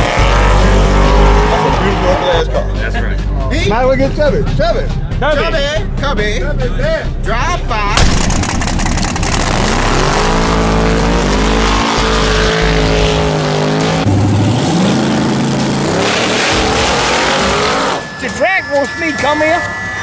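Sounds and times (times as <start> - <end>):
drag racing car engine: 0.0 - 2.8, 8.0 - 19.0.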